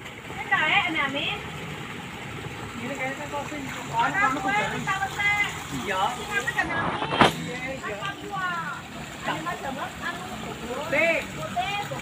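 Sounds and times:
people talking: 0.4 - 1.4, 2.8 - 12.0.

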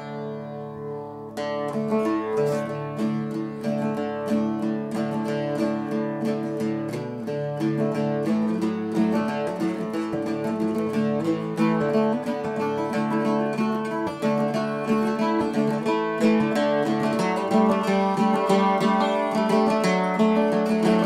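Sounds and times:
acoustic guitar plucked notes and chords: 0.0 - 21.0.

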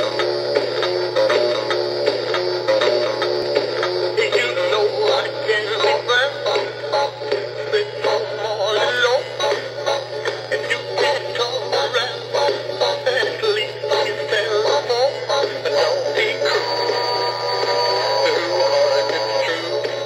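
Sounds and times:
steady low hum: 0.0 - 20.0
man singing over music: 4.1 - 20.0.

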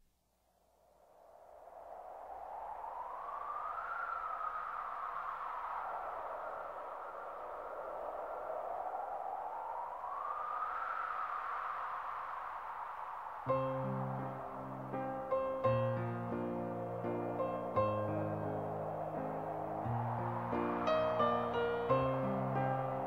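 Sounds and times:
wind-like whooshing hiss: 0.7 - 23.0.

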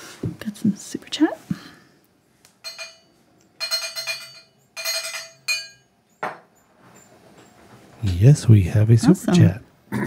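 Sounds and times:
glassy bell-like chime: 2.6 - 6.3.

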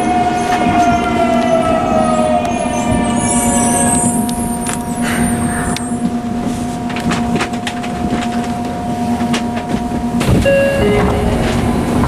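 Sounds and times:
subway doors sliding open: 0.0 - 12.0
descending door chime: 10.2 - 12.0.

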